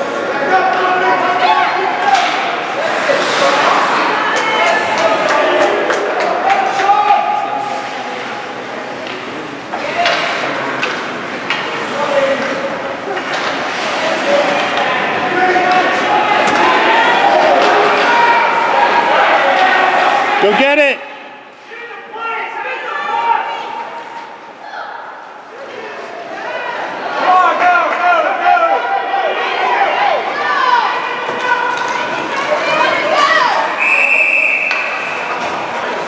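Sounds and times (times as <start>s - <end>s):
sticks and puck clacking: 1.9s - 6.9s, 7.6s - 20.6s, 30.9s - 33.8s, 34.6s - 36.0s.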